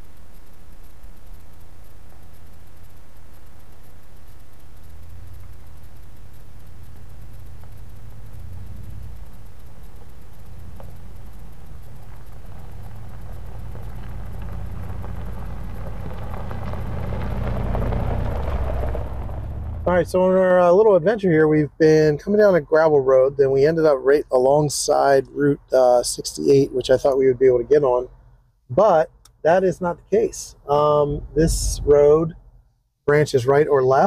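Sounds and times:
vehicle engine approaching: 5.0 - 20.4, 30.4 - 32.6
tyres on gravel: 7.0 - 20.3.

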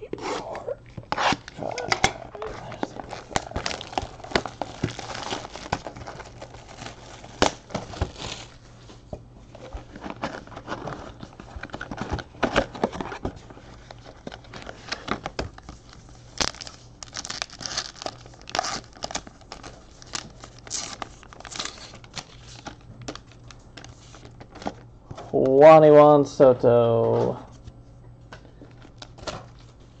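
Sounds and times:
packaging crinkling: 0.9 - 8.7, 9.5 - 24.9.

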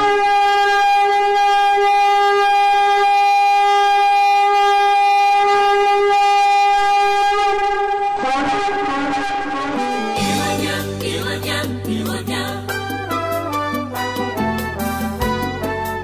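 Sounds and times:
long horn blast: 0.0 - 11.0, 12.6 - 16.0.

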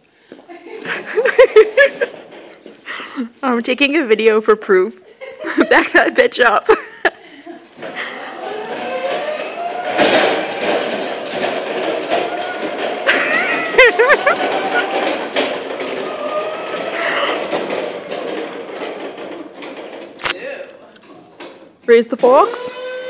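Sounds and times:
laughter: 0.5 - 2.2, 5.1 - 7.6, 13.1 - 14.8
electric reach truck driving: 7.6 - 20.3, 22.0 - 23.0.

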